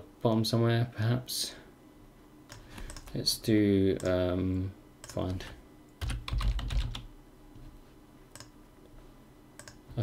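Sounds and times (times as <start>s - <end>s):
computer keyboard typing: 2.5s - 3.1s, 5.0s - 5.4s, 6.0s - 7.1s, 8.3s - 8.5s, 9.6s - 9.8s.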